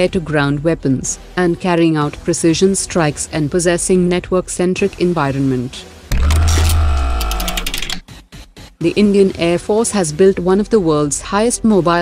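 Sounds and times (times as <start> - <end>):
rapid mechanical clicking: 6.1 - 8.0.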